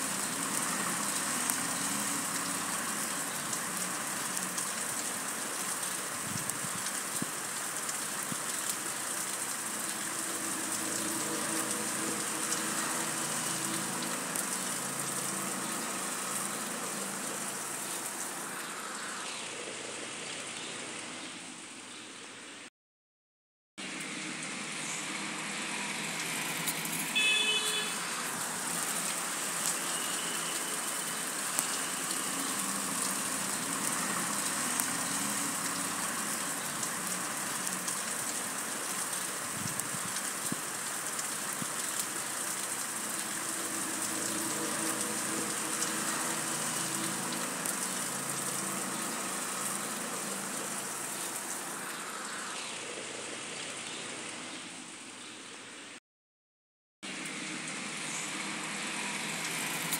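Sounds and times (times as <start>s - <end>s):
fast-flowing floodwater: 0.0s - 18.9s, 23.8s - 55.1s
heavy rain: 0.0s - 22.7s, 23.8s - 56.0s, 57.0s - 59.9s.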